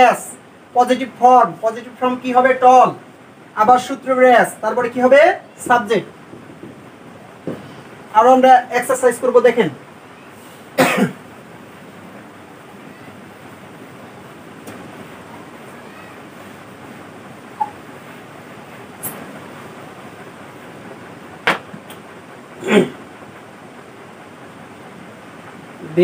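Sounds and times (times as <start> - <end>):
faint hiss: 0.0 - 26.0
person coughing: 10.8 - 11.2, 22.6 - 23.0.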